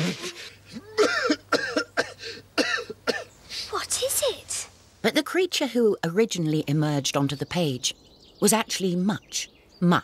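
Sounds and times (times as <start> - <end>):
coughing and throat-clearing: 0.0 - 3.3.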